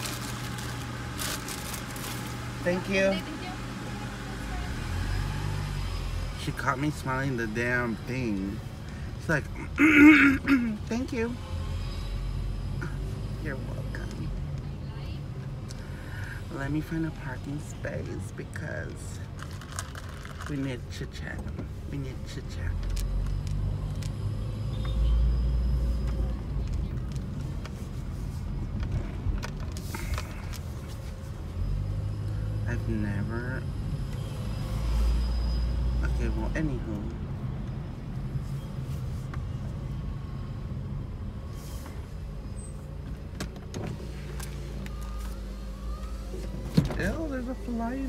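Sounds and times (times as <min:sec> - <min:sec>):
car engine and road rumble: 0:00.0 - 0:48.0.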